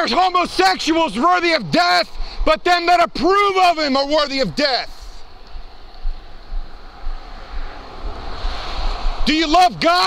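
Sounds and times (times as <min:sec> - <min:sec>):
wind on microphone: 0:05.2 - 0:09.9.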